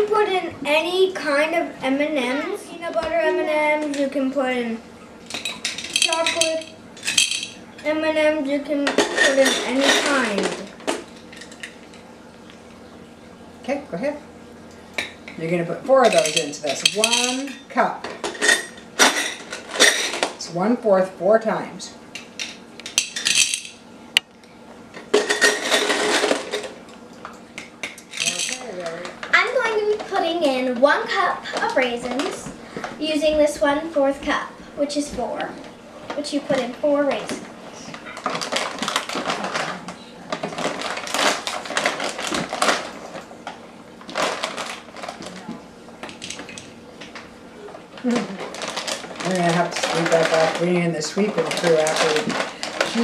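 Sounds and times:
candy rattling into glass jar: 5.4 - 7.6, 16.0 - 17.5, 28.1 - 28.6, 48.1 - 53.0
plastic pouch rustling: 38.2 - 43.2, 44.0 - 45.4, 48.1 - 53.0.

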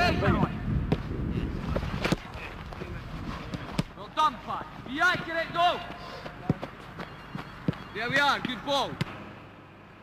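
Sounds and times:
wind rumble on microphone: 0.0 - 3.7.

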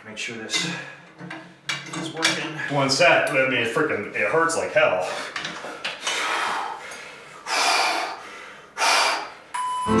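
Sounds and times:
man gasping heavy breaths: 5.1 - 9.5
steady electronic beep: 9.6 - 10.0.

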